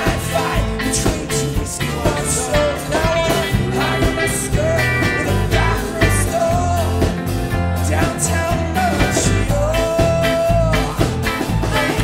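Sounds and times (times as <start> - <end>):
bass guitar: 0.0 - 12.0
drums with cymbal hits: 0.0 - 12.0
man singing: 0.0 - 12.0.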